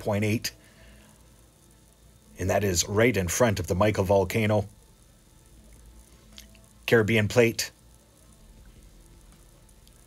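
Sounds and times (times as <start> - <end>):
low even hiss: 0.0 - 10.0.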